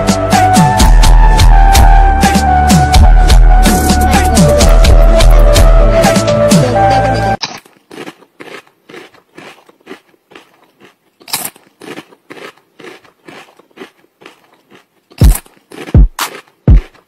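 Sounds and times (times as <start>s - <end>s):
deep booms dropping in pitch: 0.0s - 6.2s
crunchy snack being chewed: 7.4s - 17.0s.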